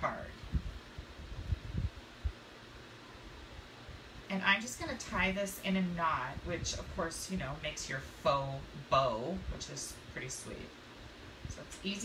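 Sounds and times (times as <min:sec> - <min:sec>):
faint steady hiss: 0:00.0 - 0:12.0
soft low thumps: 0:00.4 - 0:02.4.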